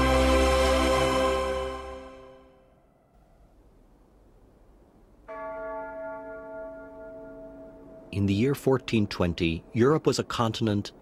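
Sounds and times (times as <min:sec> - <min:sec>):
large church bell ringing: 0:05.2 - 0:09.8.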